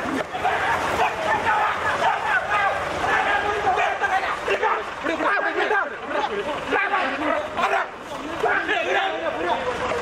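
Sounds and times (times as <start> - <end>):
people shouting and yelling: 0.0 - 10.0.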